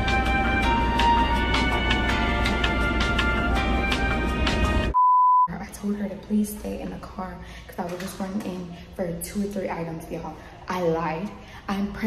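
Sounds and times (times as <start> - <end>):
background music: 0.0 - 5.0
censor bleep tone: 5.0 - 5.5
woman speaking: 5.5 - 12.0.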